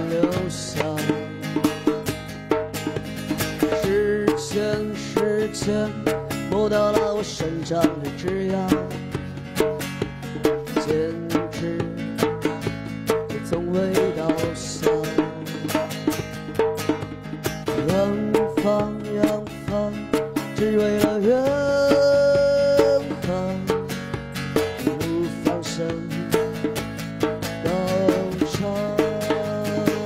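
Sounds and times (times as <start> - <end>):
man singing: 0.0 - 2.1, 3.6 - 9.4, 10.2 - 16.1, 17.7 - 30.0
acoustic guitar strumming: 0.0 - 30.0.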